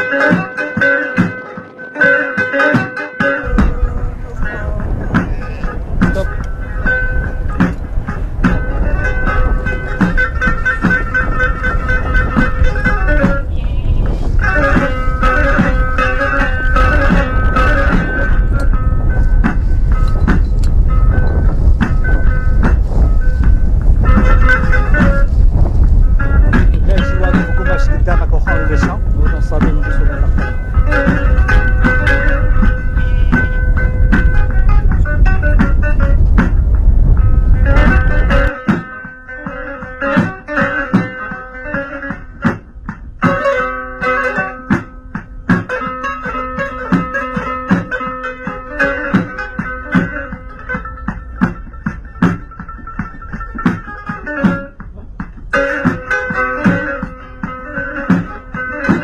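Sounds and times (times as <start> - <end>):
music with steady beat: 0.0 - 59.0
heavy low rumble: 3.4 - 38.6
held sustained notes: 3.4 - 59.0.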